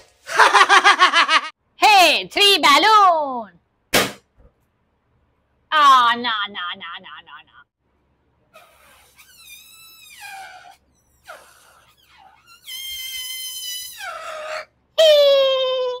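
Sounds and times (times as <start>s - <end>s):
balloon squealing as it deflates: 8.5s - 14.7s.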